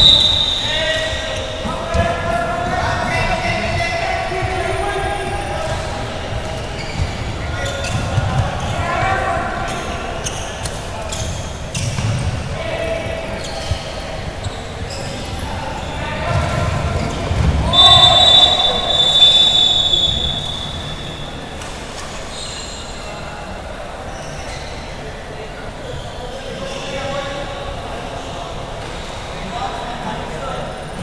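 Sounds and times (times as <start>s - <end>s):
loud high steady tone: 0.0s - 1.6s, 17.6s - 21.5s
players shouting: 0.0s - 10.4s, 12.5s - 21.6s.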